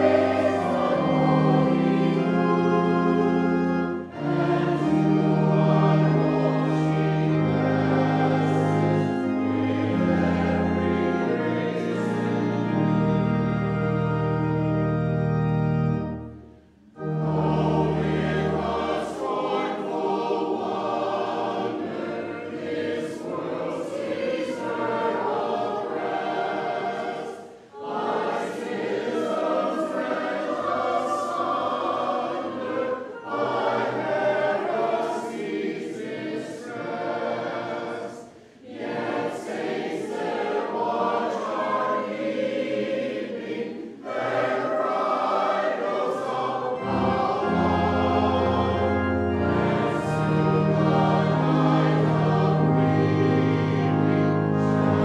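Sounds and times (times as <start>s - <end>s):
low organ chord: 0.0s - 38.1s, 38.9s - 55.0s
congregation singing a hymn: 0.0s - 55.0s.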